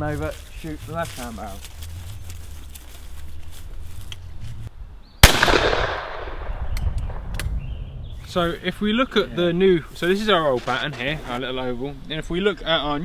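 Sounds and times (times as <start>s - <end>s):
footsteps in grass: 0.0s - 4.7s
shotgun shot echoing: 5.2s - 7.4s.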